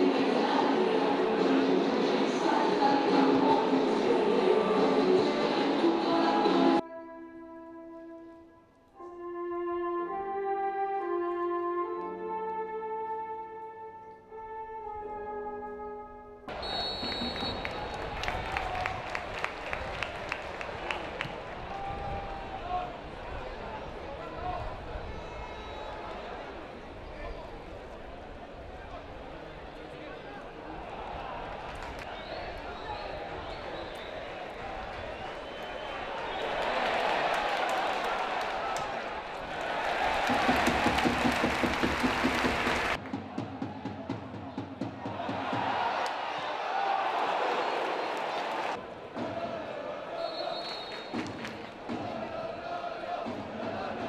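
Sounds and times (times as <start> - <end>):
stadium crowd hum: 0.0 - 6.8, 16.5 - 54.0
solo brass melody: 6.8 - 17.4
crowd clapping: 16.5 - 22.8, 31.3 - 32.2, 33.2 - 43.2, 45.4 - 48.8, 50.8 - 52.5
crowd shouting: 30.6 - 44.2, 44.8 - 54.0.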